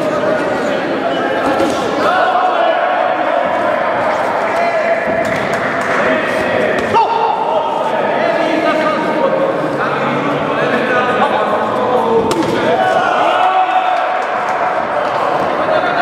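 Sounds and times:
voices shouting in echoing hall: 0.0 - 16.0.

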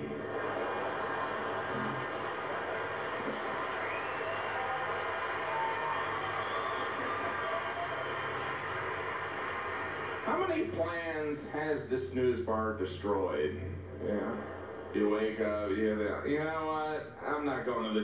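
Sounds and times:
audience applauding: 0.0 - 10.8.

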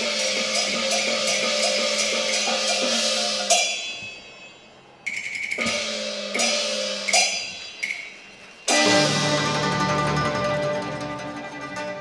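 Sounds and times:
cymbal crashes: 0.0 - 4.8, 5.6 - 12.0
percussion ensemble beat: 0.0 - 12.0.

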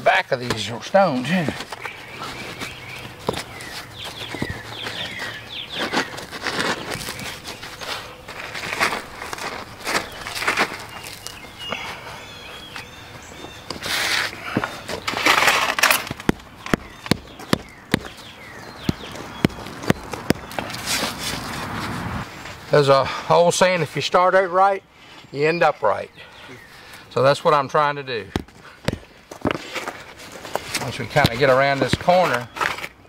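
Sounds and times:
shovel scraping crushed stone: 4.9 - 11.4, 13.8 - 18.1.

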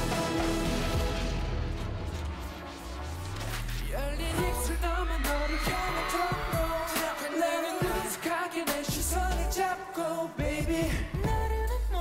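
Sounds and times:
pop dance song with male vocals: 0.0 - 1.2, 3.6 - 12.0
deep bass: 0.0 - 6.8, 10.6 - 12.0.

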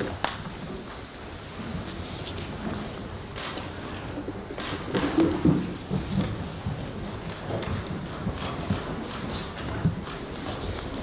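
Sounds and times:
murmur of crowded room: 0.0 - 11.0.

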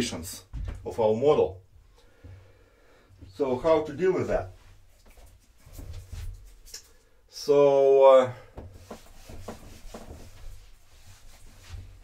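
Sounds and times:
marker writing on whiteboard: 8.7 - 11.2.

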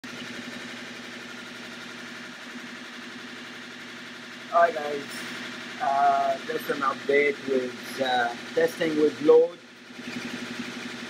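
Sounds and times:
electric motor humming: 0.1 - 11.0.

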